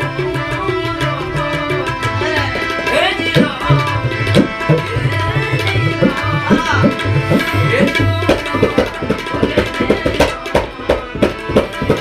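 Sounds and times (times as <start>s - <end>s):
harmonium held notes: 0.0s - 12.0s
tabla strokes: 0.0s - 12.0s.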